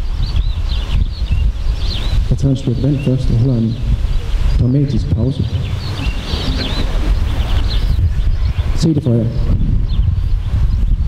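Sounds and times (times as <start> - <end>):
birds chirping: 0.0 - 11.0
wind rumble on microphone: 0.0 - 11.0.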